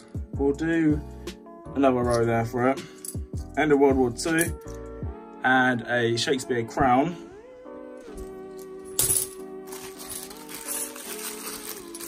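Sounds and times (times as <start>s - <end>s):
background music with held notes: 0.0s - 12.0s
coins rattling in plastic bag: 8.6s - 12.0s.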